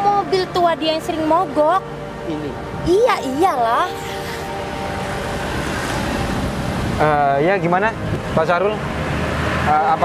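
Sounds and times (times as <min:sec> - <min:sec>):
wind-like rushing noise: 0:01.5 - 0:10.0.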